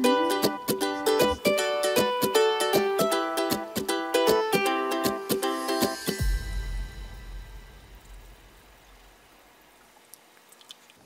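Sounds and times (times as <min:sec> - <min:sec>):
faint low rumble: 0:06.2 - 0:10.0.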